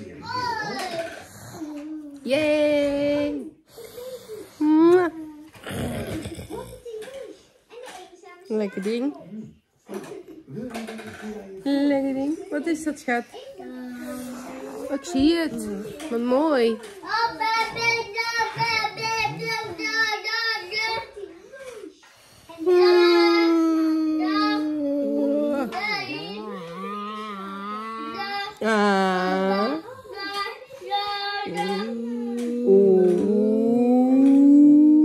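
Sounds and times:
child vocalising sing-song: 22.5 - 35.0.

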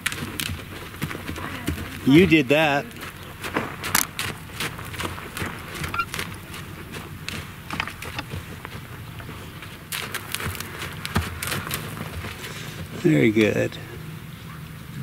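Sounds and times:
footsteps: 0.0 - 13.9
horse hoofbeats: 0.0 - 14.6
low steady hum: 0.0 - 15.0.

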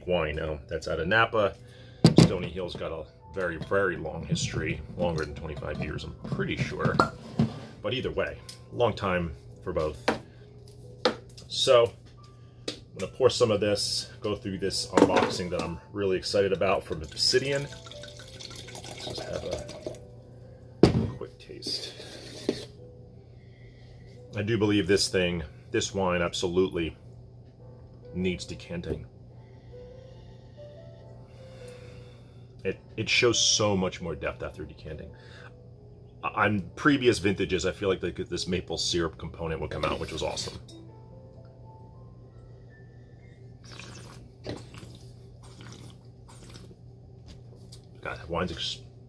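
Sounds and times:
low steady hum: 0.0 - 49.0
wine slurping in mouth: 17.5 - 20.0, 43.6 - 46.8.

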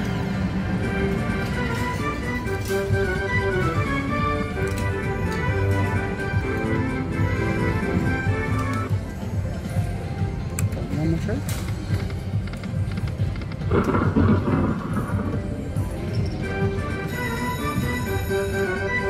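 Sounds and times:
slot machine win tune: 0.2 - 9.0, 13.7 - 19.0
casino background noise: 0.2 - 18.9.

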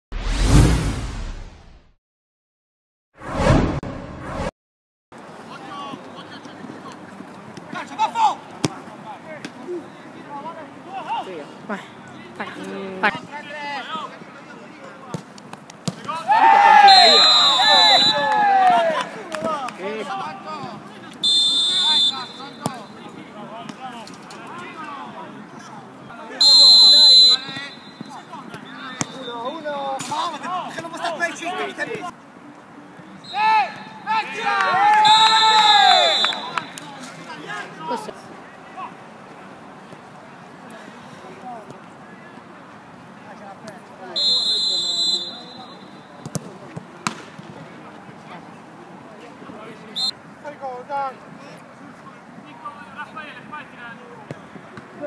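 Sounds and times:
players shouting: 15.9 - 23.5, 33.2 - 39.1
referee's pea whistle: 16.6 - 18.4, 21.2 - 22.9, 26.4 - 29.5, 33.2 - 34.0, 34.9 - 36.8, 44.2 - 46.1, 50.0 - 50.2
football kicks: 46.2 - 47.5.

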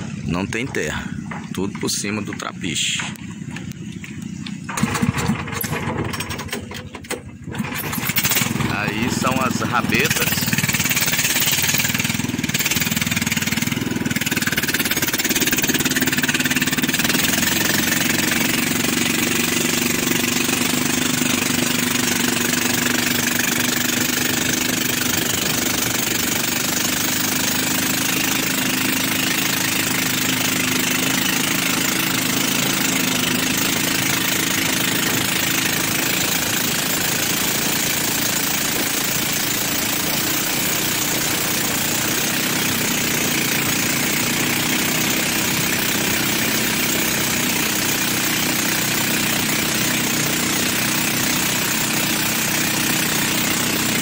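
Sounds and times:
boat motor droning: 0.0 - 54.0.

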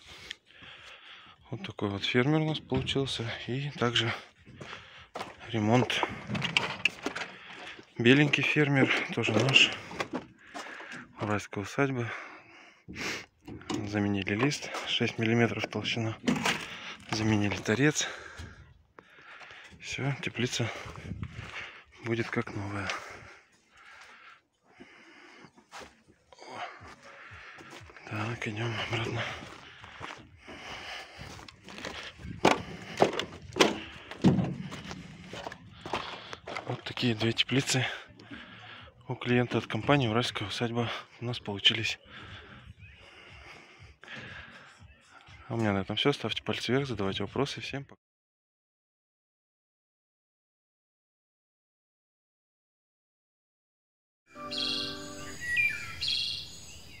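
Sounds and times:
footsteps on gravel: 3.9 - 11.0, 19.3 - 24.2, 25.6 - 37.9
held musical chord: 54.3 - 56.0
bird warbling: 54.4 - 57.0
downward-sliding bird chirp: 54.4 - 57.0.

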